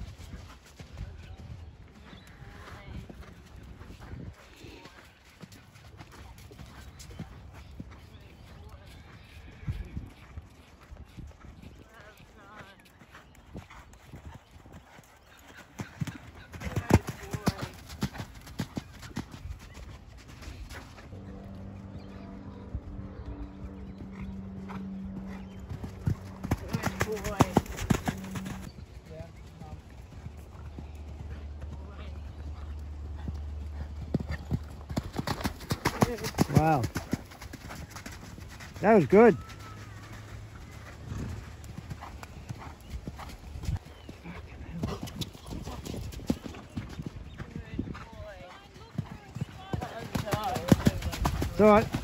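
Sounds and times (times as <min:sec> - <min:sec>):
horse hoofbeats cantering on sand: 0:00.0 - 0:52.0
steady low hum: 0:21.1 - 0:28.7.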